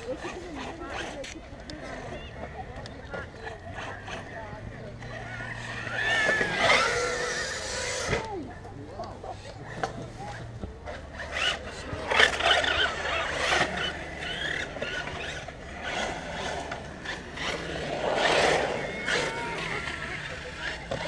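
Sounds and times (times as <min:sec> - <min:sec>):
rc car motor whine: 0:00.1 - 0:08.4, 0:09.7 - 0:21.0.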